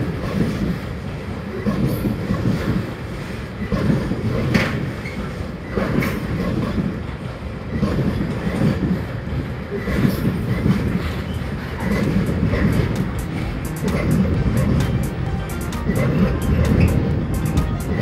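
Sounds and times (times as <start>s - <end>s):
train rumbling past: 0.0s - 18.0s
wheels clattering over rail joints: 0.0s - 18.0s
wheel ticks: 9.9s - 18.0s.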